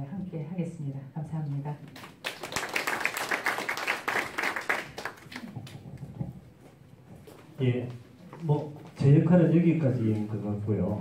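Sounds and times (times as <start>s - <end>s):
audience applauding: 2.0s - 5.8s.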